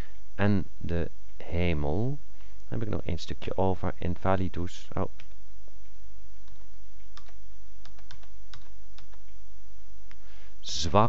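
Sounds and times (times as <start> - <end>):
low electrical hum: 0.0 - 11.0
computer keys clicking: 6.4 - 9.4.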